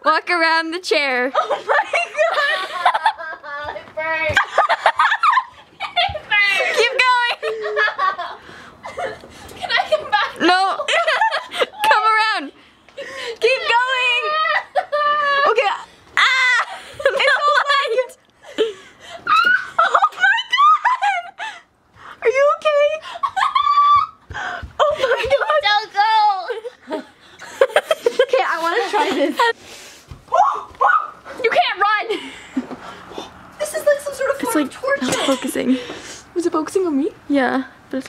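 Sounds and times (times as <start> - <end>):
laughter: 1.3 - 11.9, 16.6 - 21.6, 23.1 - 24.2, 24.8 - 25.6, 26.5 - 29.6, 35.0 - 35.7
girls squealing: 13.5 - 17.7, 19.1 - 21.4, 23.1 - 25.4, 30.3 - 31.4.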